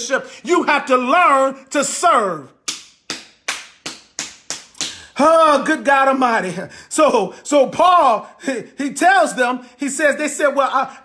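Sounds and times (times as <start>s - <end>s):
hand claps: 2.6s - 5.2s.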